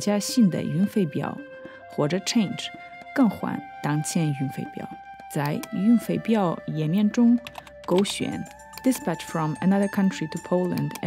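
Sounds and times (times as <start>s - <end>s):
background music: 0.0s - 11.0s
person narrating: 3.2s - 11.0s
keyboard keystrokes: 7.4s - 9.0s.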